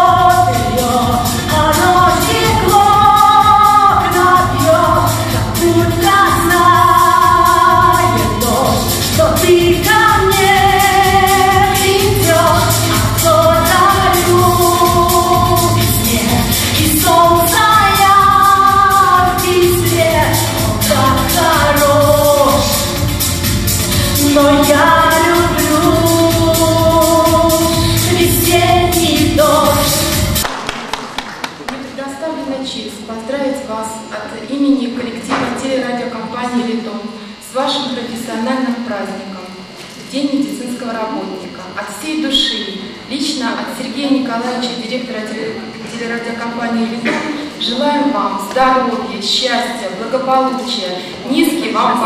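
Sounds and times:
woman singing into microphone: 0.0 - 23.1, 23.9 - 30.4
instrumental accompaniment with beat: 0.0 - 30.8
hand claps: 30.4 - 31.8.

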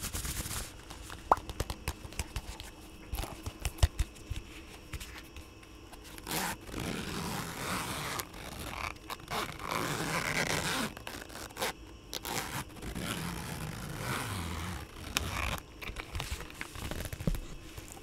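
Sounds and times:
leather case scraping and rubbing: 5.9 - 18.0
zipper being drawn: 6.2 - 15.6.

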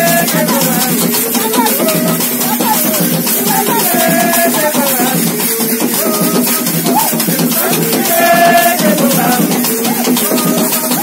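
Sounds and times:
congregation singing: 0.0 - 11.0
metal shaker rattling: 0.0 - 11.0.

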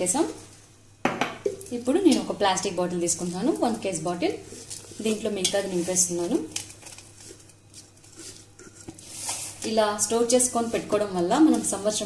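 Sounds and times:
woman talking: 0.0 - 0.4, 1.7 - 4.4, 5.0 - 6.5, 9.6 - 12.0.

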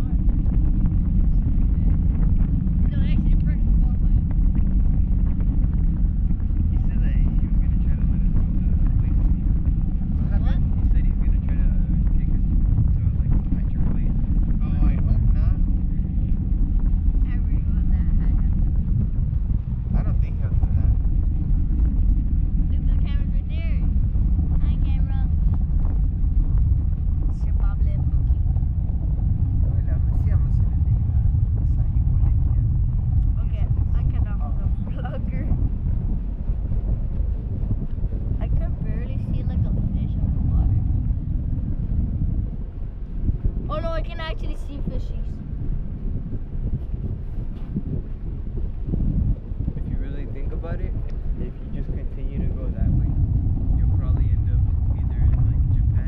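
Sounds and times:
wind rumbling on microphone: 0.0 - 56.0.

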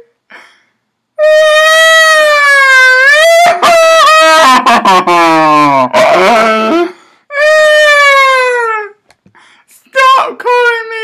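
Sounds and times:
man wailing in mock crying: 1.2 - 8.8.

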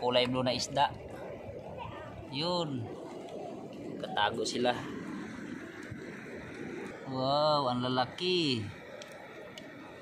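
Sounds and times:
shallow seawater at shore: 0.0 - 10.0
faint ticks: 8.9 - 9.9.

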